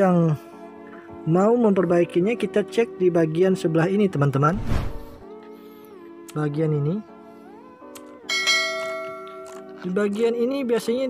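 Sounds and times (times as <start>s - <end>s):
bell-like chime: 8.3s - 9.5s.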